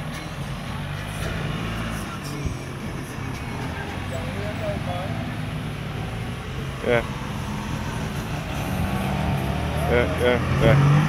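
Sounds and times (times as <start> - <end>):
cars passing on road: 0.0 - 11.0
short vocal sound: 6.8 - 7.2, 8.0 - 10.9.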